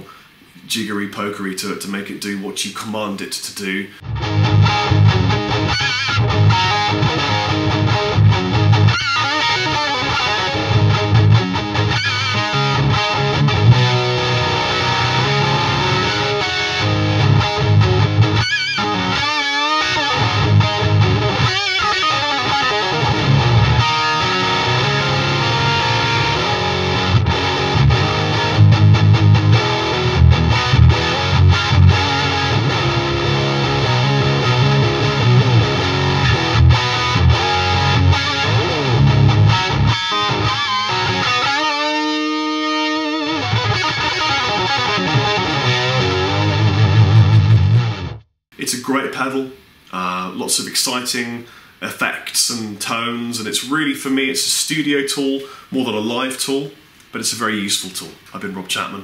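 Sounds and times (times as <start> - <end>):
distorted electric guitar: 4.0 - 48.3.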